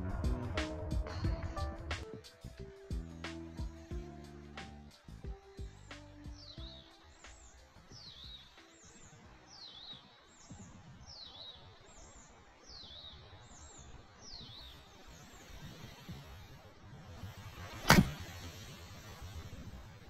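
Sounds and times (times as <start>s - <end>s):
outdoor wind noise: 0.0s - 20.0s
bird chirping: 3.0s - 16.1s
golf club striking ball: 17.8s - 18.3s.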